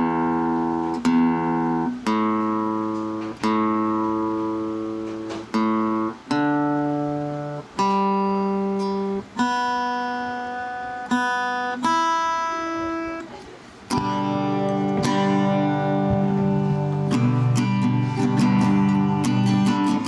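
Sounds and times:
acoustic guitar strings plucked: 0:00.0 - 0:20.0.

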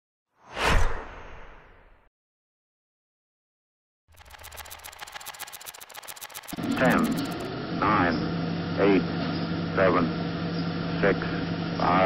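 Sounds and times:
whoosh sound effect: 0:00.4 - 0:02.0.

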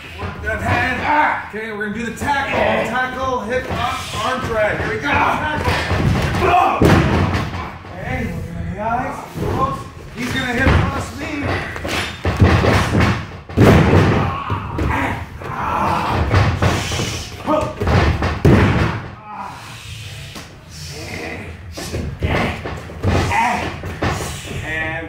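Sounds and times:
bodies thudding on ring mat: 0:09.3 - 0:19.2.

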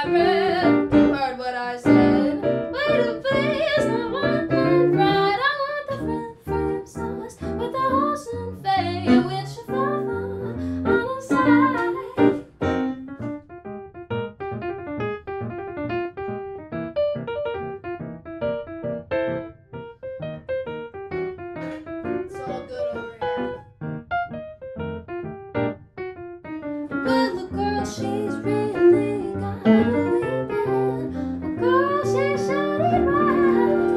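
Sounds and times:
woman singing: 0:00.0 - 0:12.5, 0:27.0 - 0:33.9
electric keyboard piano solo: 0:00.0 - 0:33.9.

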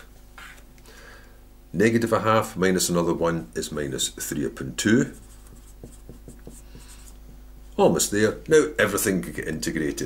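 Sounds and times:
marker writing on paper: 0:05.1 - 0:07.3.

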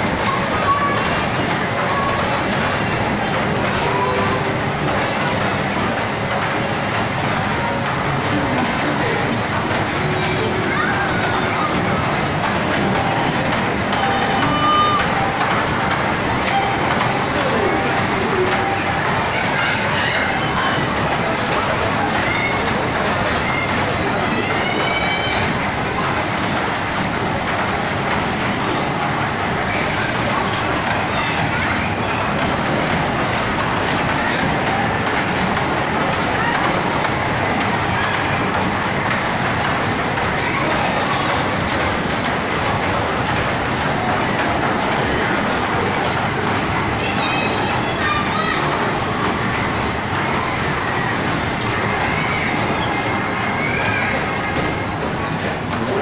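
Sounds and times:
ride train rumbling on track: 0:00.0 - 0:56.0
voices in a play hall: 0:00.0 - 0:56.0.

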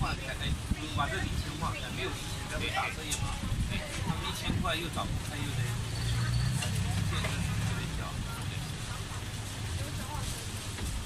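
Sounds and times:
background voices: 0:00.0 - 0:10.8
low rumble of street noise: 0:00.0 - 0:11.0.

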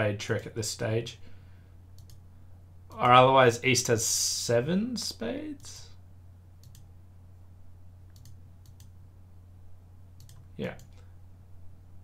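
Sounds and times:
low steady hum: 0:00.0 - 0:12.0
computer mouse clicks: 0:02.0 - 0:02.2, 0:06.6 - 0:06.9, 0:08.1 - 0:09.0, 0:10.2 - 0:11.1.

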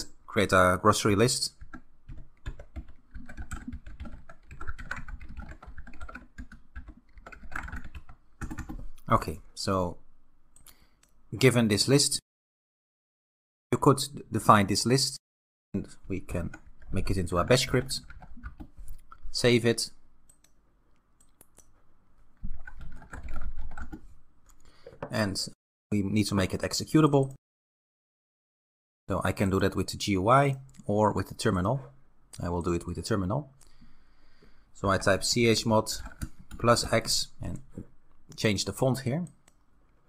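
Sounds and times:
fast typing on keyboard: 0:01.5 - 0:09.0, 0:16.3 - 0:19.0, 0:22.4 - 0:24.2, 0:35.9 - 0:37.8.

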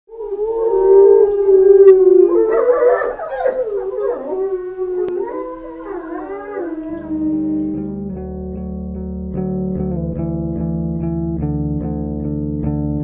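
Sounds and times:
wolves howling: 0:00.1 - 0:08.0.

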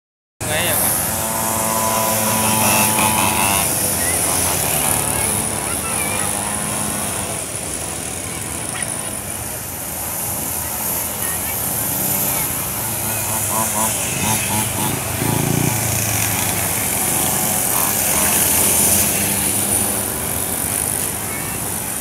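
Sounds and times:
mini trail bike engines revving: 0:00.4 - 0:22.0
voices: 0:00.4 - 0:22.0.

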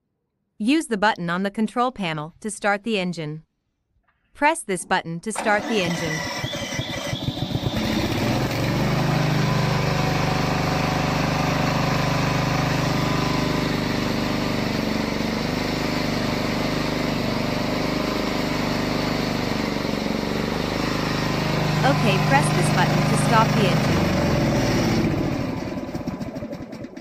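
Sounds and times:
electric starter cranking engine: 0:05.4 - 0:27.0
gasoline engine running: 0:05.6 - 0:27.0.

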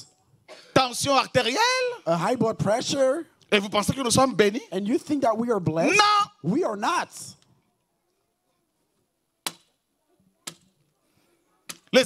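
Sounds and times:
sharp knocks: 0:09.4 - 0:09.7.

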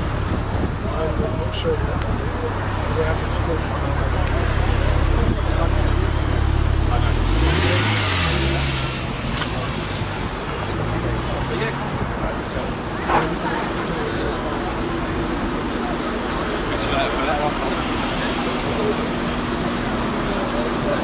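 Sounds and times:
car engine idling: 0:00.0 - 0:21.0
engine revving: 0:03.1 - 0:11.9.

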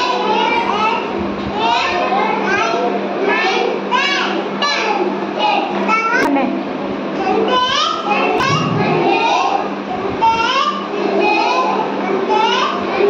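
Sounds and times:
young child speaking: 0:00.0 - 0:06.6, 0:07.2 - 0:13.0
children's voices: 0:00.0 - 0:13.0
steady low hum: 0:00.0 - 0:13.0.

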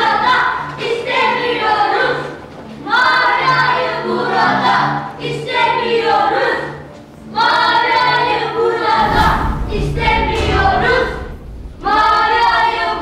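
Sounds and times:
choir singing drawn-out phrases: 0:00.0 - 0:13.0
deep bass sound: 0:09.0 - 0:13.0
low held notes: 0:09.0 - 0:13.0.

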